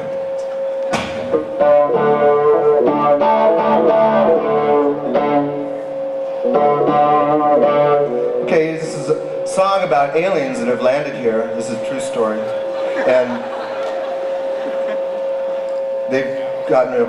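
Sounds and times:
electric keyboard chords: 0.0 - 17.0.

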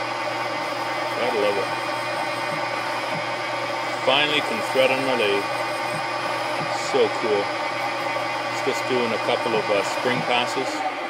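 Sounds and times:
metal lathe cutting thread: 0.0 - 11.0.

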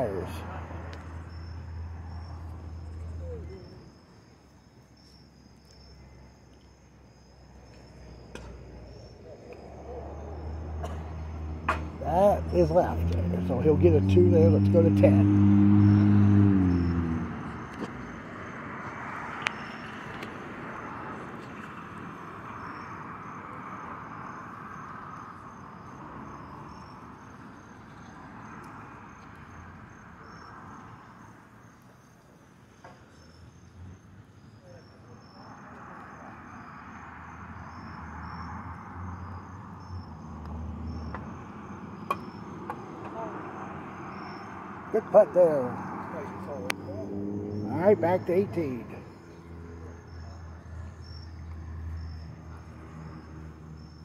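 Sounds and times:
crickets chirping: 0.0 - 54.0
faint outdoor background noise: 0.0 - 54.0.

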